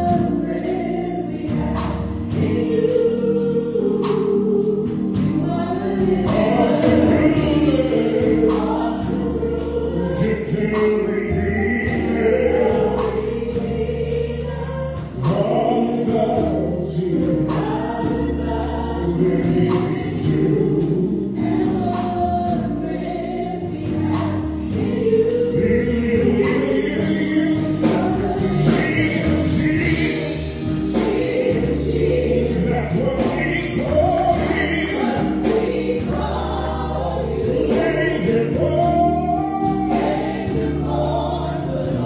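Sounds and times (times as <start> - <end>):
keyboard accompaniment: 0.0 - 42.0
man singing: 6.2 - 9.2, 10.0 - 13.8, 15.1 - 18.2, 19.0 - 21.8, 25.2 - 35.7, 36.7 - 42.0
steady beat: 21.6 - 42.0.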